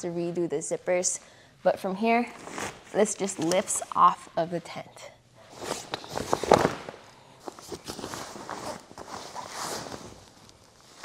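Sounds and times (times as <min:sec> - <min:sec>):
fabric rustling: 0:05.5 - 0:11.0.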